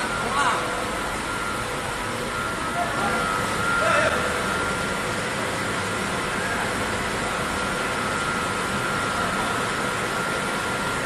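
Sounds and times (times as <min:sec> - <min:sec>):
booth machinery hiss and hum: 0:00.0 - 0:11.0
thin steady whine: 0:00.0 - 0:11.0.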